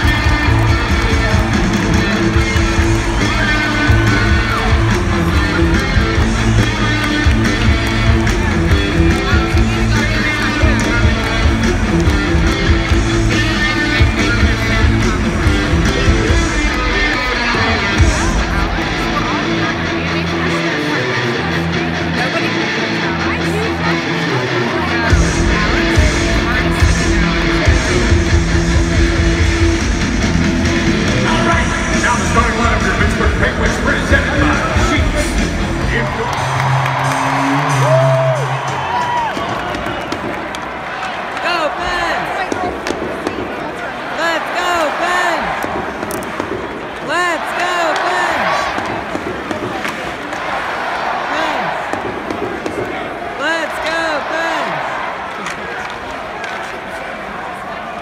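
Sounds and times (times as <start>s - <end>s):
arena music with pounding bass beat: 0.0s - 20.5s, 24.8s - 40.2s
crowd hubbub: 0.0s - 58.0s.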